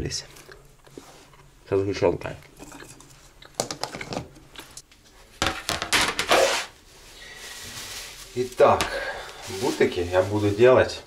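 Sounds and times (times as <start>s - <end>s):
plastic rustling: 5.6s - 11.0s.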